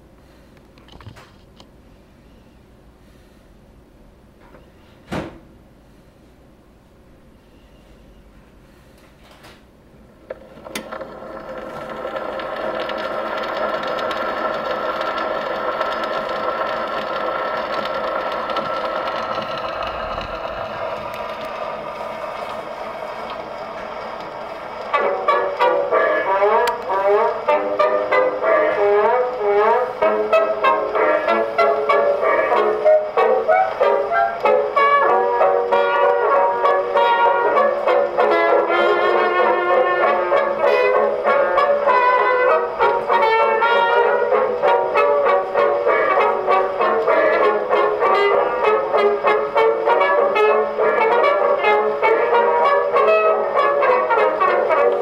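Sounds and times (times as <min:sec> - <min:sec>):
brass dance band on phonograph: 0:10.5 - 0:55.0
long held notes: 0:11.8 - 0:55.0.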